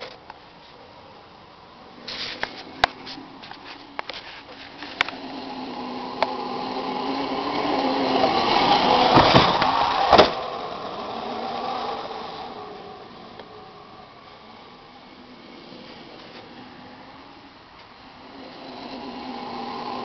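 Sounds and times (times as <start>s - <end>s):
electric motor whining: 1.8s - 20.0s
vehicle landing knocks: 9.0s - 10.4s.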